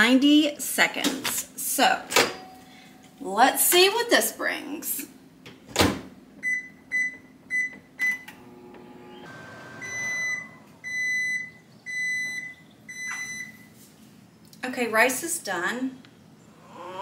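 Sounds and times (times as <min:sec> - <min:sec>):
long microwave beeps: 0:06.4 - 0:08.4, 0:09.2 - 0:13.7
microwave oven humming: 0:06.4 - 0:13.7
short keypad beeps: 0:09.8 - 0:13.6.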